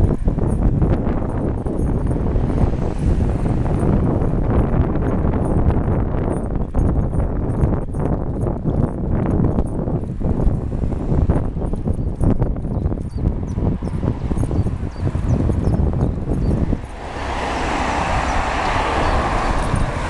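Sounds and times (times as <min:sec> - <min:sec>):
bicycle knocks and rattles: 0:00.0 - 0:17.0
wind buffeting microphone: 0:00.0 - 0:20.0.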